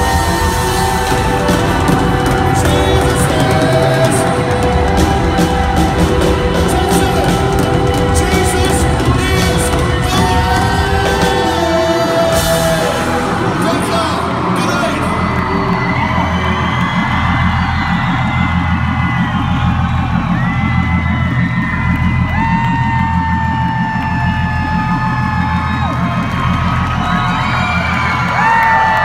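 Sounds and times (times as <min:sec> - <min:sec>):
live band music: 0:00.0 - 0:17.9
crowd cheering and whooping: 0:00.0 - 0:29.0.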